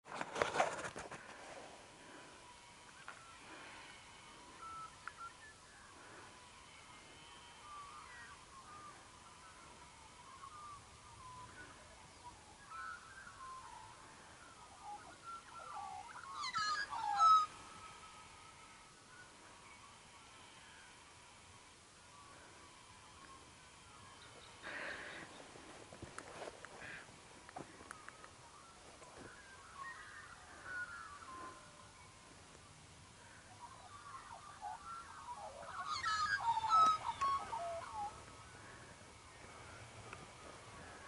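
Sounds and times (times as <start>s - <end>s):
birds calling: 0.4s - 41.0s.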